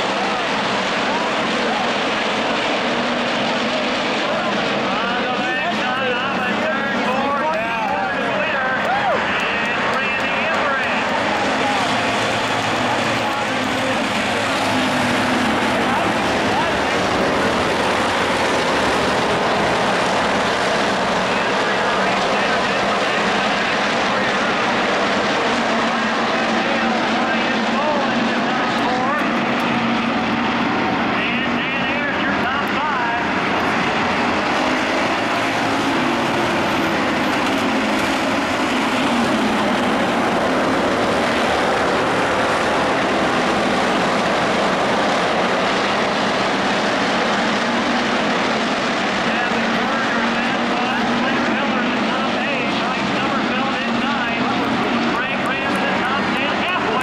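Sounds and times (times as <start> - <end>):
racing car engines: 0.0 - 57.0.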